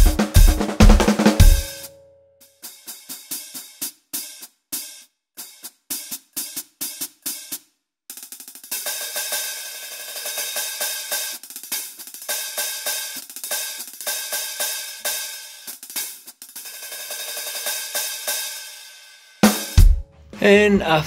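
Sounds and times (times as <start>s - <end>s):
electronic hi-hat groove: 0.0s - 1.9s.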